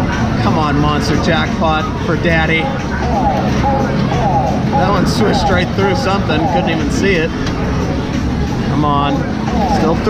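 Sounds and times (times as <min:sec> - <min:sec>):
arcade machines humming: 0:00.0 - 0:10.0
arcade game music: 0:02.6 - 0:07.3.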